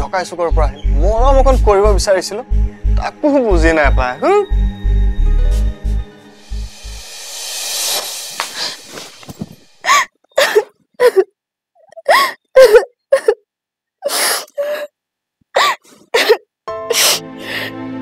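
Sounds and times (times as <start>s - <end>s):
background music sustained tones: 0.0s - 10.0s, 16.7s - 18.0s
woman sobbing: 9.8s - 14.9s, 15.6s - 17.7s.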